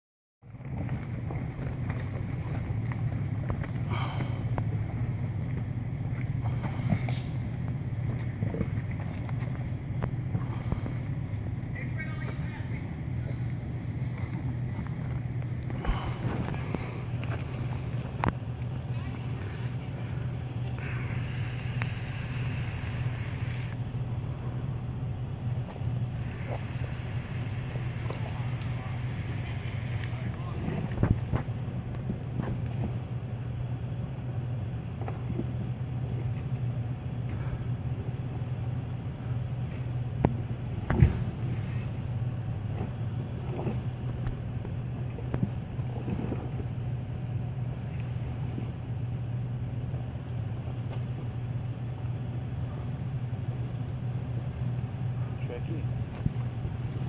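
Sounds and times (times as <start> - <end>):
engine running at low crawl: 0.4 - 57.0.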